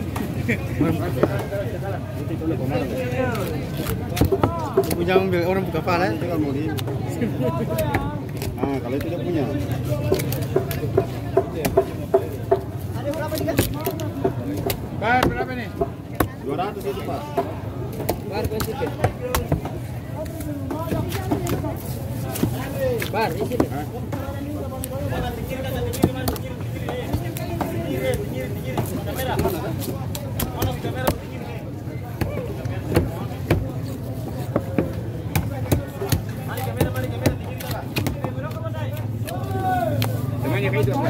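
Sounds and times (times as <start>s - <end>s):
background chatter: 0.0s - 41.0s
knife chopping fish: 3.3s - 5.6s, 22.4s - 38.6s
cleaver chopping on wooden block: 34.5s - 38.6s.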